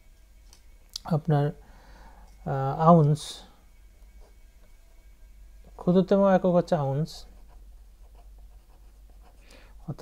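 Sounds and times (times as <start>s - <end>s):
pen scratching on paper: 7.3s - 9.4s.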